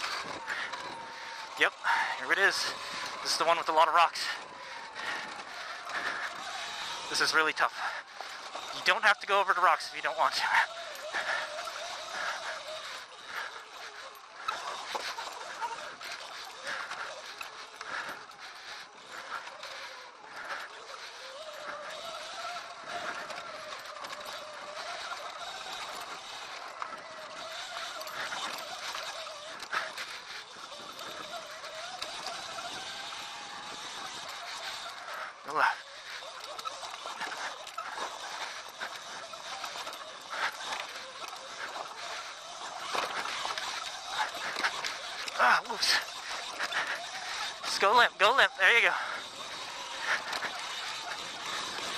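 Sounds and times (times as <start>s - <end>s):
electric motorbike motor whining: 0.0s - 51.9s.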